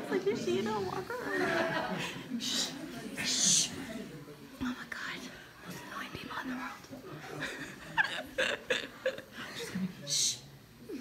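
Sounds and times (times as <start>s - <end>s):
hushed whispering voices: 2.3s - 7.2s, 9.6s - 11.0s.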